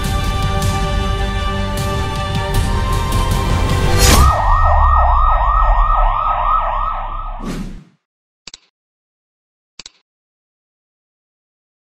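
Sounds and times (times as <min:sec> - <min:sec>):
sudden hit: 0:03.8 - 0:07.5
yelp siren: 0:04.0 - 0:07.4.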